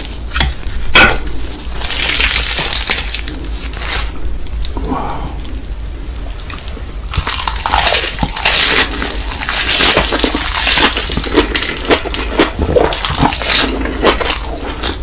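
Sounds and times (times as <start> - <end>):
crisp crunching while eating: 0.0 - 4.8, 6.4 - 15.0
wet chewing: 6.4 - 15.0.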